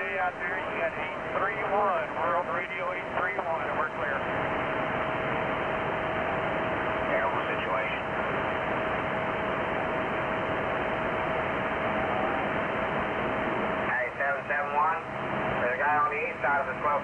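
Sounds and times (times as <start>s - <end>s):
constant radio whistle: 0.0s - 17.0s
faint garbled radio voices: 0.0s - 17.0s
radio static hiss: 0.0s - 17.0s.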